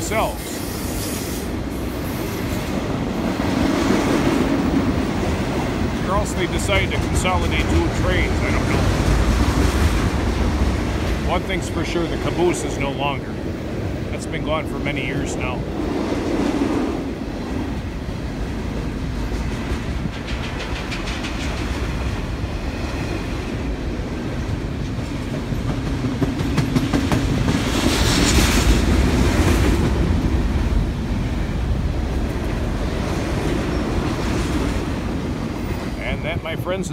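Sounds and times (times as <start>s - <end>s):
freight train wheels rumbling: 0.0s - 36.9s.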